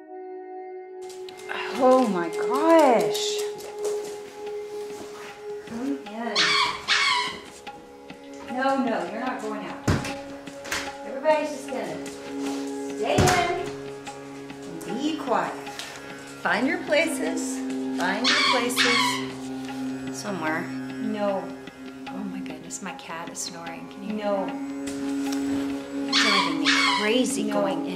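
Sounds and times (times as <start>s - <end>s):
faint music: 1.0s - 27.9s
dog barking: 6.4s - 7.4s, 18.2s - 19.2s, 26.1s - 27.0s.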